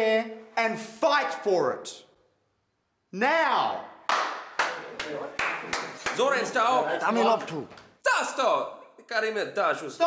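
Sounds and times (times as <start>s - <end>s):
hands clapping: 4.0s - 6.8s.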